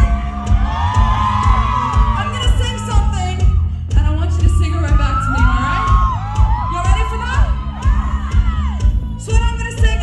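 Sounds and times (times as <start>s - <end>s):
band playing pounding low beat: 0.0s - 10.0s
crowd screaming and whooping: 0.0s - 10.0s.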